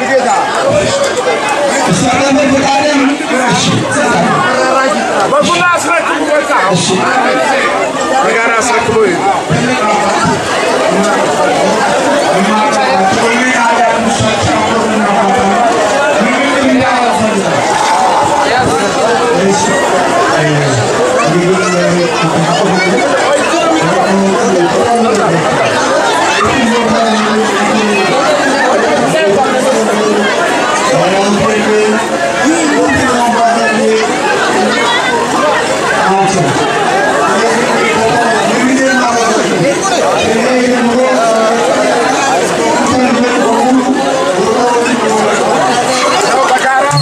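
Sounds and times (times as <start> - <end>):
man speaking into microphone: 0.0 - 35.0, 35.9 - 47.0
crowd chatter: 0.0 - 47.0.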